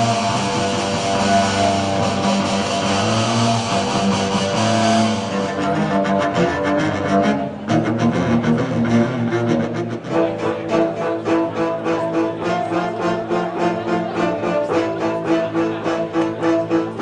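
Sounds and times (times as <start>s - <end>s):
bowed double bass: 0.0s - 17.0s
cello playing: 0.0s - 17.0s.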